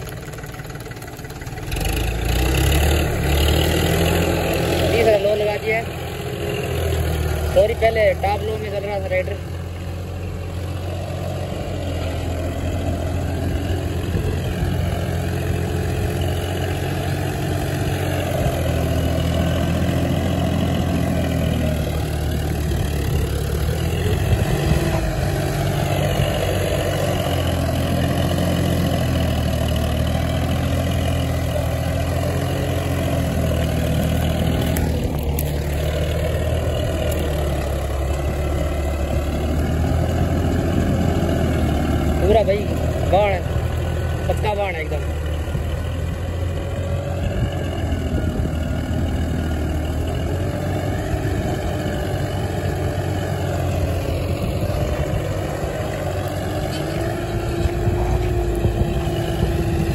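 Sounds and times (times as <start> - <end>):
tractor diesel engine under load: 0.0 - 59.9.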